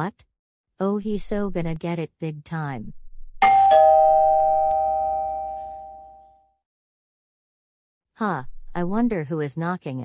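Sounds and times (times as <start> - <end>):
two-note doorbell chime: 3.4 - 6.5.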